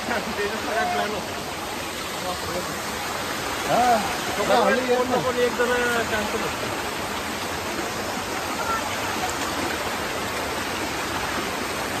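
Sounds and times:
waterfall rushing over rocks: 0.0s - 12.0s.

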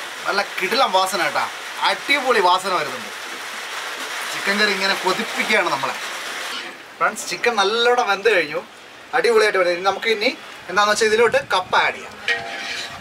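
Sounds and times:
person talking: 0.2s - 3.1s, 4.3s - 6.0s.

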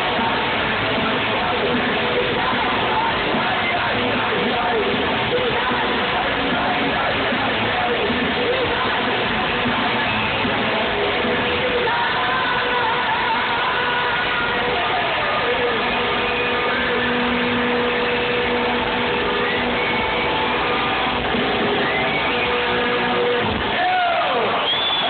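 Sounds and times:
rock band playing live: 0.0s - 25.0s.

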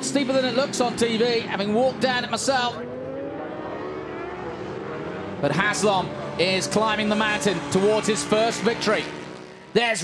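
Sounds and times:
racing motorcycle engines: 0.0s - 10.0s.

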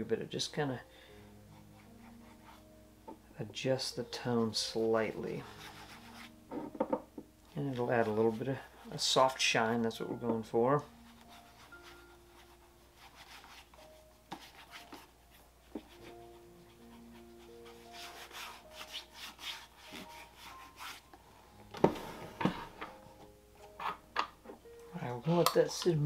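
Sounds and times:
slow background music: 0.0s - 26.0s
fingertips rubbing polish into shoe: 11.0s - 15.1s, 15.7s - 21.1s.

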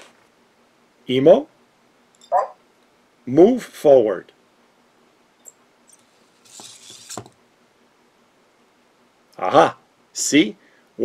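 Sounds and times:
small servo motors whirring: 6.0s - 7.4s.

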